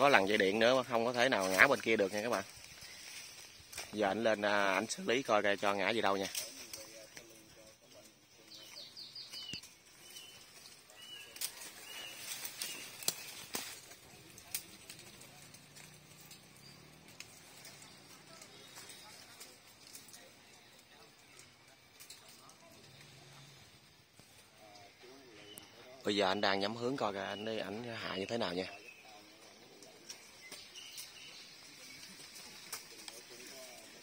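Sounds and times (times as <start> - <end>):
small birds chirping: 0.0 - 34.0.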